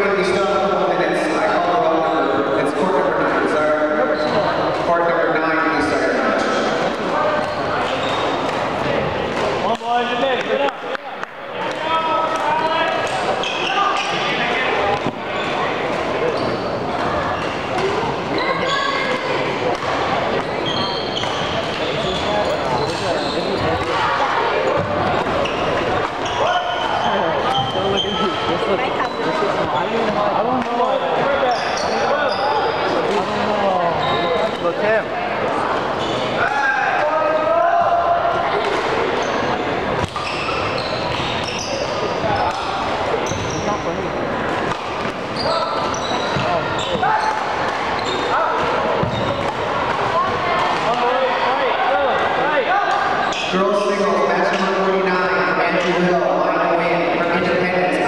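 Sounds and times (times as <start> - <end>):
chatter of voices echoing: 0.0 - 58.0
sneakers squeaking: 3.5 - 9.7, 11.6 - 34.8, 35.6 - 36.6, 38.4 - 52.2, 52.9 - 58.0.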